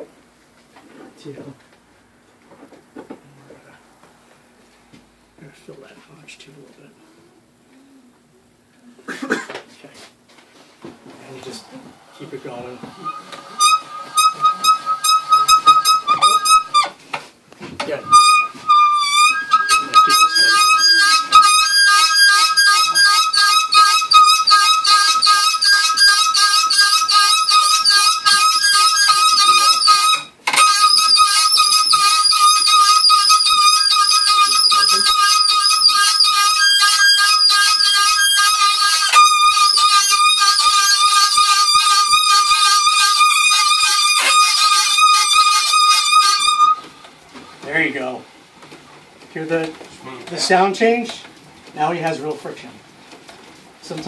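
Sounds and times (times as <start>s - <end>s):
fire drill squeaking on wood: 11.4s - 17.0s, 17.8s - 47.9s.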